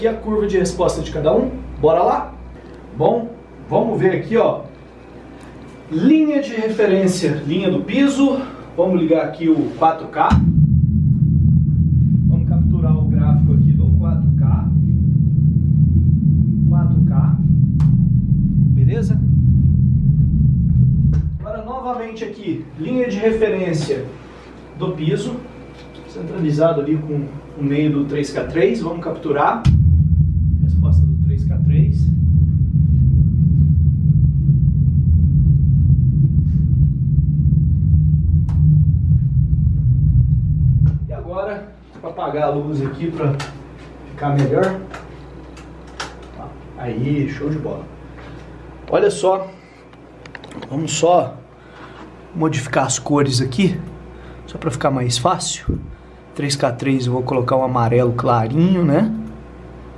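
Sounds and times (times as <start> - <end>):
deep rush of noise from subwoofer: 9.8 - 23.6, 28.5 - 41.9, 50.9 - 58.7.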